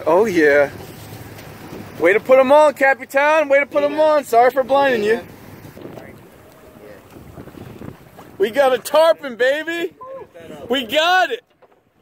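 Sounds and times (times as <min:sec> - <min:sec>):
water against boat: 0:00.0 - 0:12.0
wind rumble on microphone: 0:05.2 - 0:08.8.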